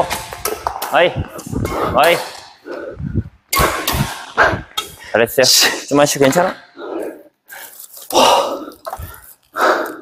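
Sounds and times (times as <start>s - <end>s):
racket hitting shuttlecock: 0.0s - 2.6s, 3.5s - 4.9s.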